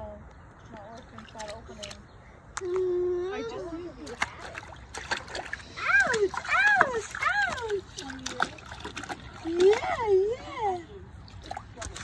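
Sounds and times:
baby splashing water: 0:00.9 - 0:02.1, 0:02.7 - 0:12.0.

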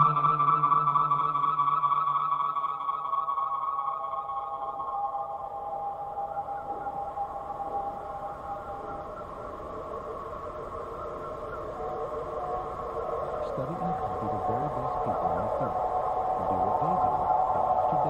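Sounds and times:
ambient electronic drone: 0:00.0 - 0:18.0.

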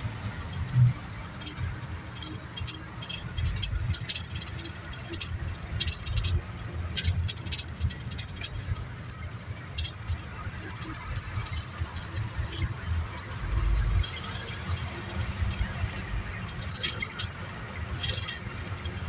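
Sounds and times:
minibus engine and road rumble: 0:00.0 - 0:19.0
rattles and clicks of bus body: 0:00.0 - 0:19.0.

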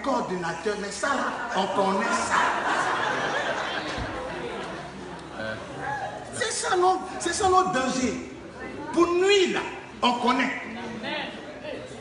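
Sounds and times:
people talking and murmuring: 0:00.0 - 0:12.0.

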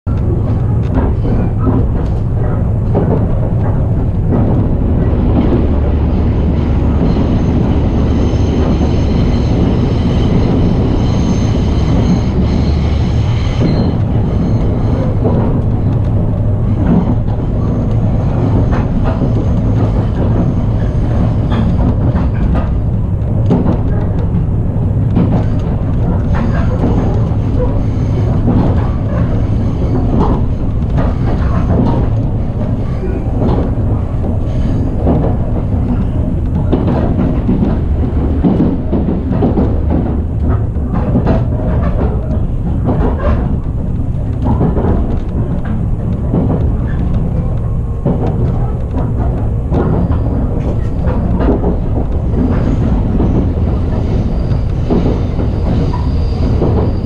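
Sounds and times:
train rumble and hum: 0:00.0 - 0:57.0
wheels clicking on rails: 0:00.1 - 0:57.0.

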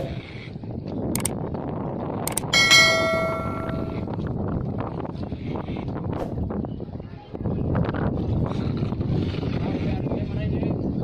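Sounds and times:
outdoor background noise: 0:00.0 - 0:11.0
mouse clicks: 0:02.3 - 0:02.5
bell chime: 0:02.6 - 0:04.1.

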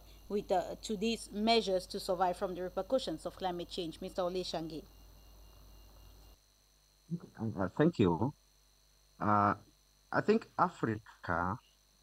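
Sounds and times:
faint background hum and hiss: 0:00.0 - 0:12.0.

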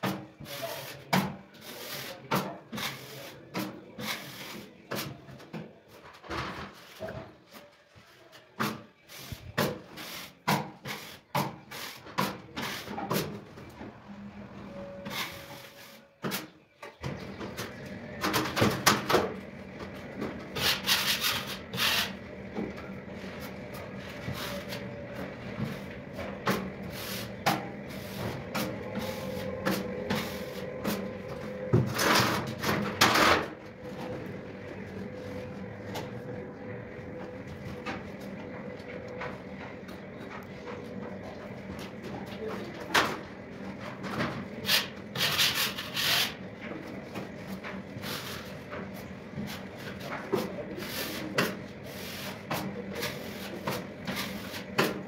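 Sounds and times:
steady hum: 0:17.0 - 0:55.0
drywall knife scraping plasterboard: 0:20.6 - 0:22.1, 0:44.6 - 0:46.4.

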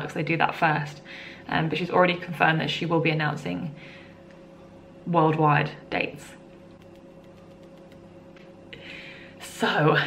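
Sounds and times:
faint electrical hum: 0:00.0 - 0:10.0
soft breath: 0:08.7 - 0:09.4.

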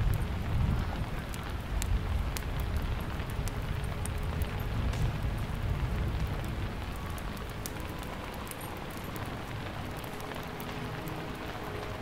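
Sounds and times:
steady rain falling: 0:00.0 - 0:12.0.

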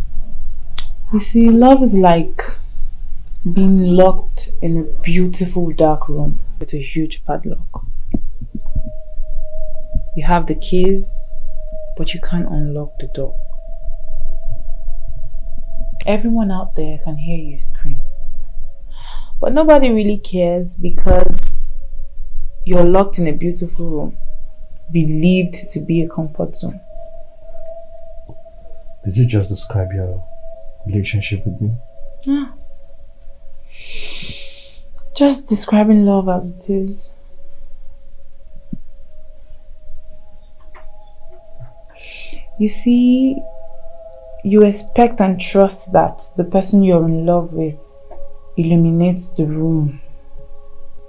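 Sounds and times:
low hum: 0:00.0 - 0:51.0
low throbbing drone: 0:00.0 - 0:51.0
steady held tone: 0:00.0 - 0:51.0
soft held film music notes: 0:22.6 - 0:32.7, 0:37.9 - 0:51.0.

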